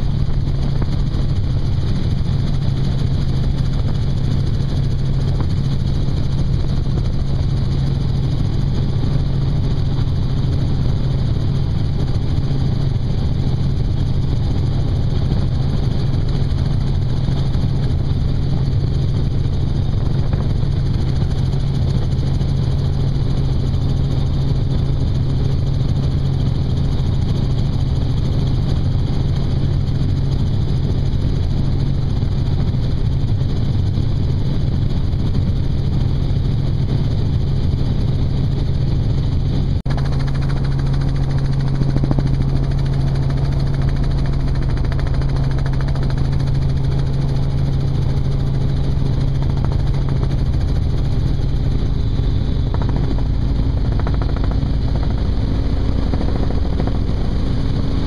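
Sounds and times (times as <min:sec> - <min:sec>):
helicopter engine and rotor drone: 0:00.0 - 0:58.0.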